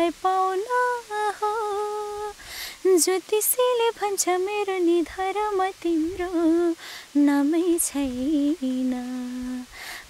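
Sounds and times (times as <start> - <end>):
woman singing unaccompanied: 0.0 - 9.9
quick breath: 2.4 - 2.8, 6.8 - 7.1, 9.7 - 10.0.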